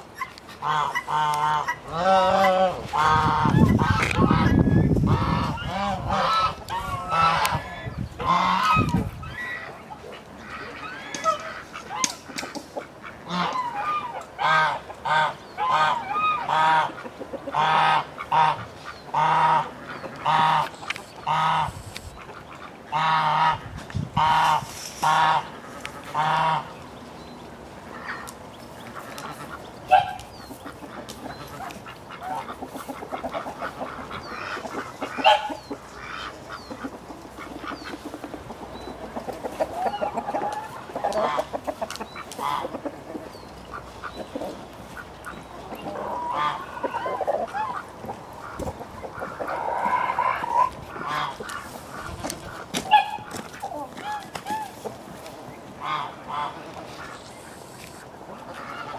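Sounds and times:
poultry calling: 0:00.2 - 0:26.8, 0:27.9 - 0:58.9.

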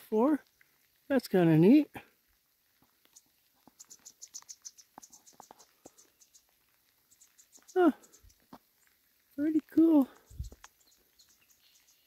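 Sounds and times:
small bird thin high chirps: 0:03.8 - 0:06.5, 0:10.2 - 0:12.0.

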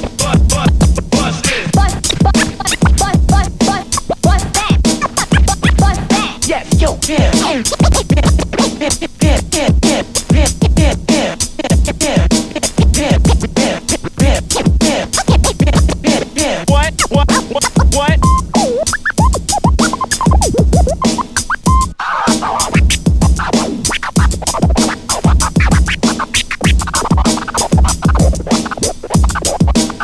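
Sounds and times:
hip-hop break beat: 0:00.0 - 0:30.0
vinyl scratching: 0:00.0 - 0:30.0.

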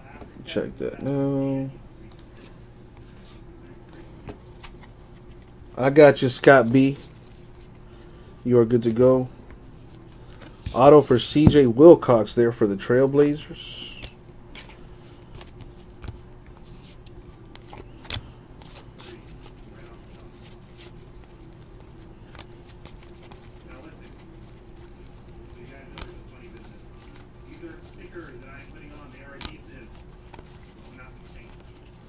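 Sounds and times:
steady low hum: 0:00.0 - 0:32.0
cards flipped by hand: 0:03.9 - 0:05.6, 0:13.9 - 0:32.0.

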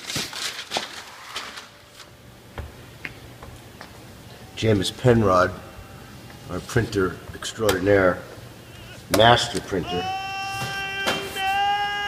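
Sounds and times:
paper rustling: 0:00.0 - 0:02.2.

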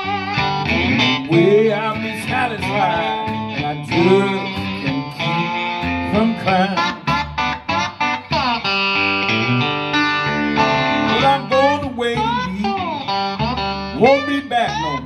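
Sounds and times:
electric guitar bending notes: 0:00.0 - 0:15.0.

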